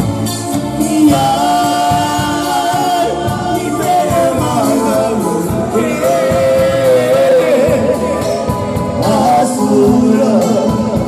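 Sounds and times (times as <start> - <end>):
band music with singing: 0.0 - 11.0.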